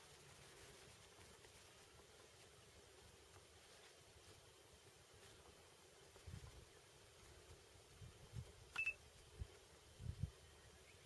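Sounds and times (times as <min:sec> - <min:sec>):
short electronic beep: 0:08.8 - 0:09.0.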